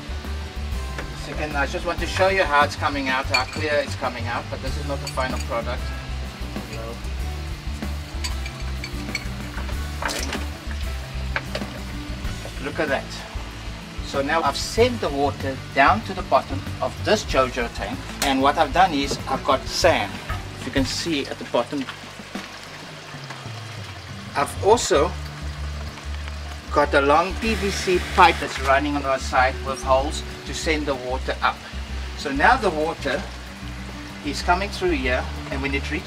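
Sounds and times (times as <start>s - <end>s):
background music: 0.0s - 36.0s
glass clinks: 3.2s - 3.7s, 5.0s - 5.6s, 6.7s - 7.0s, 8.2s - 9.4s
water spraying into a glass: 27.2s - 29.2s.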